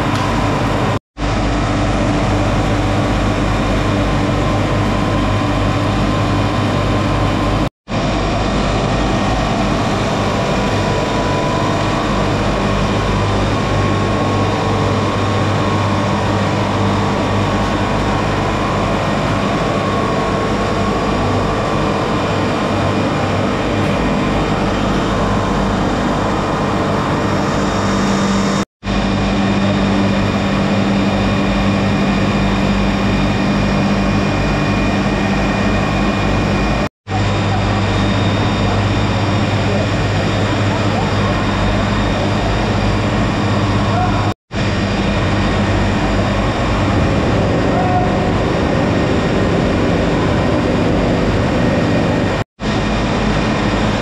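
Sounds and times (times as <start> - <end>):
mill machinery humming: 0.0 - 54.0.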